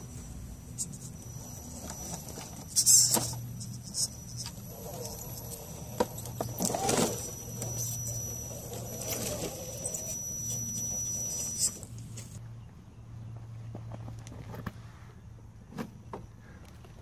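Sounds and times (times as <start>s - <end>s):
small motor and gears whirring: 0.0s - 12.4s.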